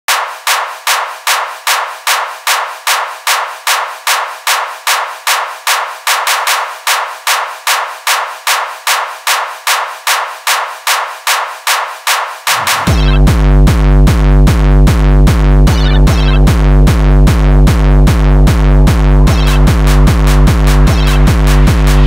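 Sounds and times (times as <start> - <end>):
electronic track percussive hits: 0.1 - 22.0.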